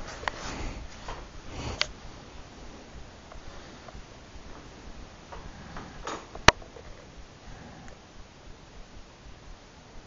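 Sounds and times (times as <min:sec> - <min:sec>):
hand rubbing dog fur: 0:00.0 - 0:04.0.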